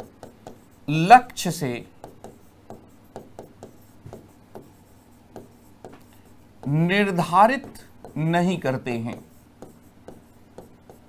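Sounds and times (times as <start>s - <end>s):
pen writing on a board: 0.0s - 11.0s.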